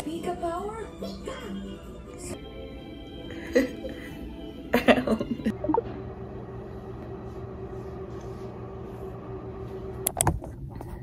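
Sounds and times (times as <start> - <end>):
low hum: 5.5 - 11.0.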